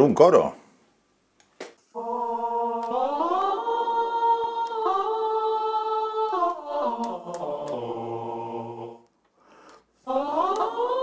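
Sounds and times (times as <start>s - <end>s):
synthesized choir voices: 1.9s - 11.0s.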